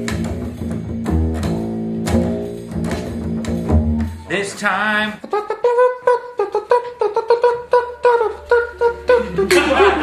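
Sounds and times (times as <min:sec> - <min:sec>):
plucked string instrument notes: 0:00.0 - 0:05.4.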